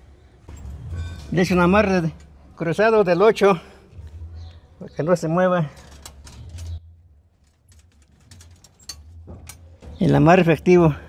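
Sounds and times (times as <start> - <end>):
tie wire twisting around rebar: 5.6 - 9.8.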